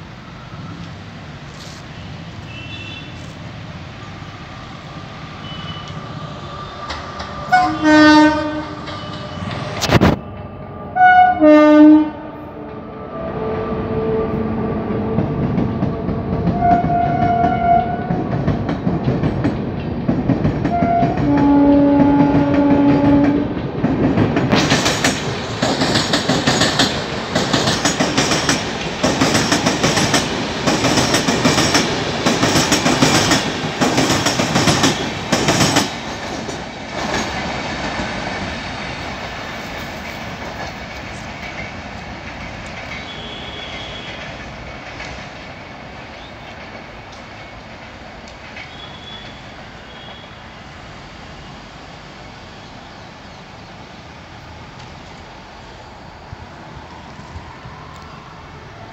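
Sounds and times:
locomotive horn blasts: 5.4 - 6.0, 7.5 - 9.5, 11.0 - 18.1, 20.7 - 23.4, 43.0 - 44.3, 48.7 - 50.4
train wheels clacking over rail joints: 6.8 - 10.2, 15.1 - 49.4.

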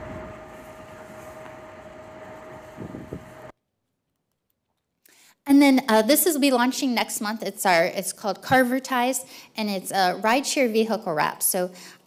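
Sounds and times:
mid-pitched hum: 0.0 - 3.5.

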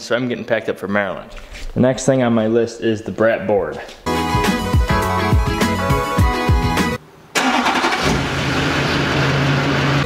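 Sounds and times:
background music with a beat: 4.0 - 7.0
diesel pickup engine starting: 7.4 - 10.0.

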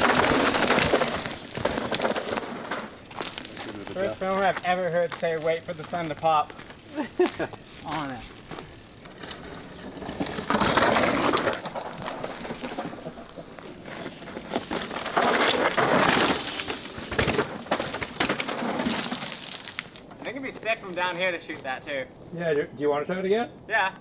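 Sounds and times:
bike tyres skidding over stones: 0.0 - 22.1.

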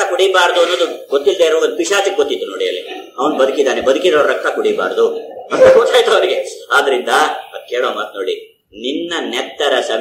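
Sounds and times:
man lecturing through a microphone: 0.0 - 10.0.

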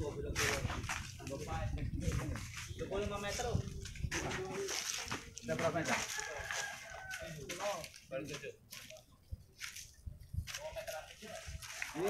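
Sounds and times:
voices: 0.0 - 12.0
rooster crowing: 5.8 - 7.6.

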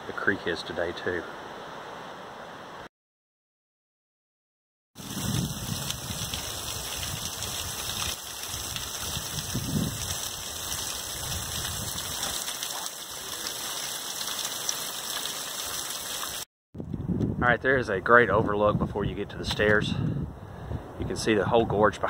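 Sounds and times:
water dripping off rock: 5.0 - 16.4.

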